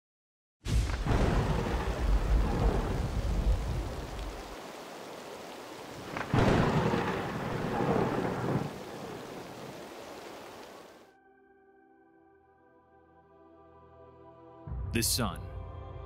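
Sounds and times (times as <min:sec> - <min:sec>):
sharp thunderclap: 0:00.7 - 0:10.9
thunder rumbling: 0:00.7 - 0:11.0
steady rain: 0:00.7 - 0:11.1.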